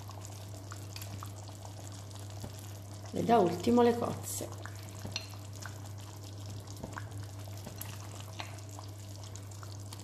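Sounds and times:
soup bubbling and popping: 0.0s - 10.0s.

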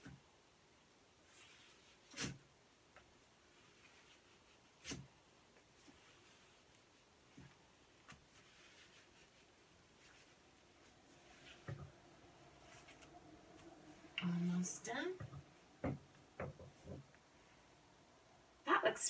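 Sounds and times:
newspaper rustling on glass: 3.4s - 12.0s
soft knocks: 15.2s - 17.1s.

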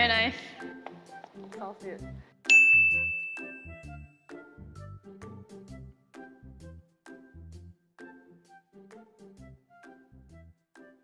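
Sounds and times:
soft background music: 0.0s - 11.0s
bell-like ding: 2.5s - 3.9s.

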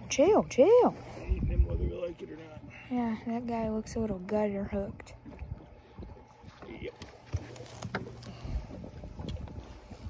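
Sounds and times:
boat motor hum: 0.0s - 10.0s
wind buffeting microphone: 0.0s - 10.0s.

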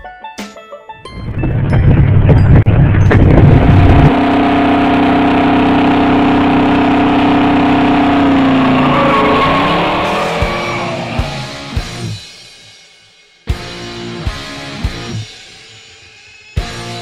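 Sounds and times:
car engine revving in a burnout: 3.0s - 12.0s.

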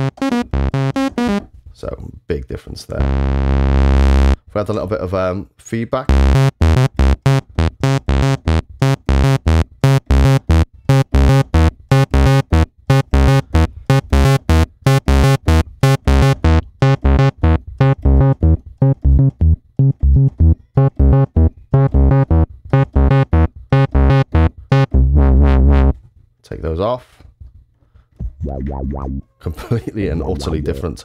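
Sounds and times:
synthesizer bass pattern: 0.0s - 1.4s, 3.0s - 4.4s, 6.1s - 26.0s, 28.3s - 29.3s, 30.0s - 31.0s.

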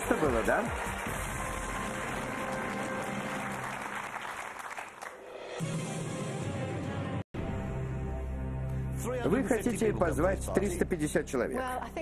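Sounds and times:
studio audience applauding: 0.0s - 5.5s
game show music: 0.0s - 11.7s.

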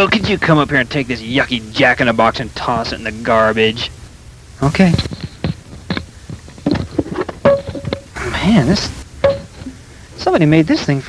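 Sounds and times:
knocks and thunks: 5.0s - 8.2s, 9.2s - 9.8s
short ringing tone: 9.2s - 9.7s.

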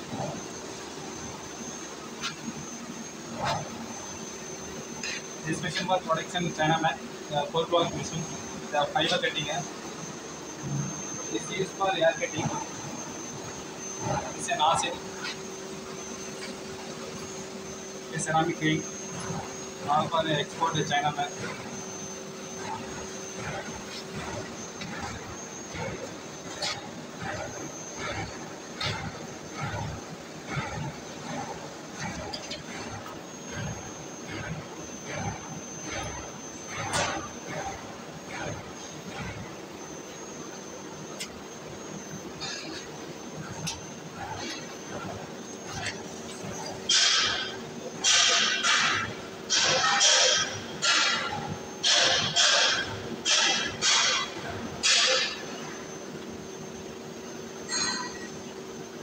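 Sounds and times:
thin high whine: 0.0s - 51.9s, 52.6s - 58.5s
workshop machinery whirring: 0.0s - 59.0s.

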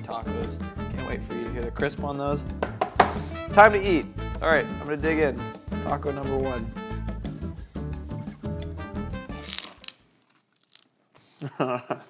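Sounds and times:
background music: 0.0s - 9.9s
crunch of biting crisp shell: 8.6s - 11.0s.

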